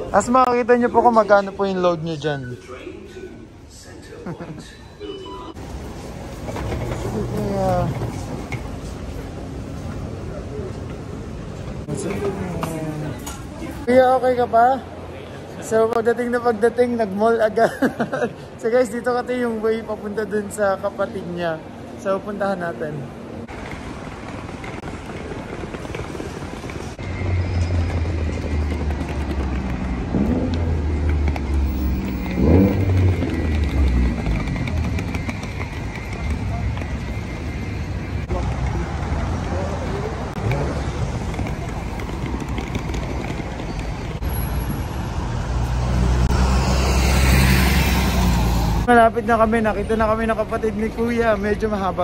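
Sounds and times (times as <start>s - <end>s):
indoor shopping mall ambience: 0.0s - 52.0s
road traffic rumble: 0.0s - 52.0s
vehicle passing: 19.4s - 49.4s
engine revving: 27.0s - 36.4s, 45.1s - 48.9s.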